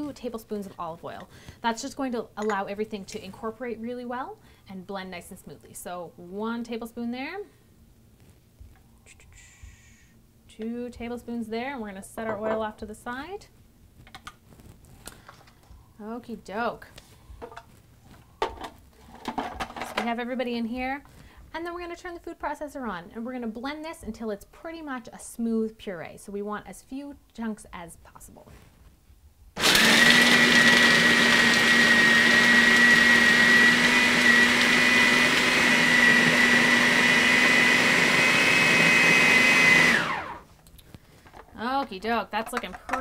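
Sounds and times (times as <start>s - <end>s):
food processor motor whining: 29.6s - 40.4s.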